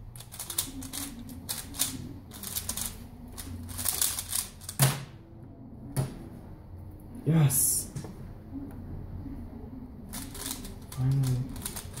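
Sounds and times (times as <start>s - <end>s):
low hum: 0.0s - 12.0s
speedcube layers clicking: 0.1s - 4.8s, 10.1s - 12.0s.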